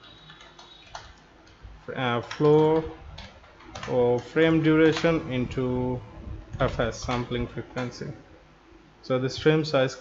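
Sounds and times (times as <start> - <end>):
keyboard keystroke clicks: 0.0 - 1.6, 2.2 - 4.0.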